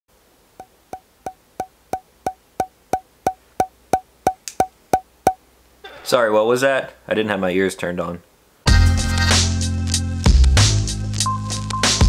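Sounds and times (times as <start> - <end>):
woody ticks with ringing pitch: 0.6 - 5.4.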